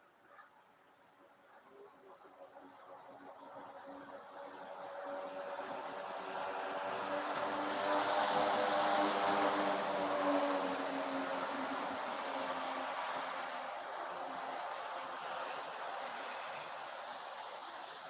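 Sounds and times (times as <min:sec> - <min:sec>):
passing engine hum: 0:02.7 - 0:18.0.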